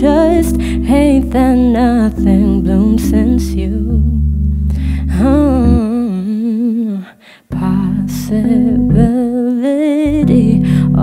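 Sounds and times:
digital piano chord: 0:00.0 - 0:06.0.

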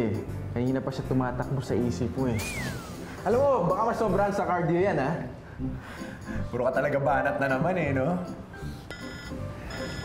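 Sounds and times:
mobile phone ringtone: 0:08.6 - 0:10.0.

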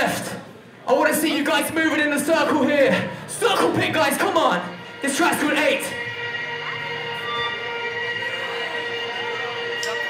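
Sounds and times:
faint crowd chatter: 0:00.0 - 0:10.0.

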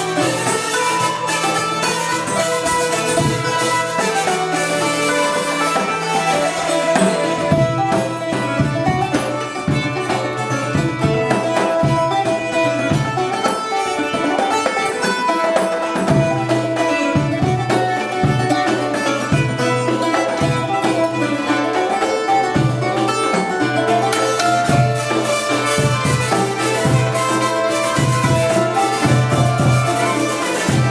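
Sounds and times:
hand drums beating: 0:00.0 - 0:30.9
strummed cittern: 0:00.0 - 0:30.9.

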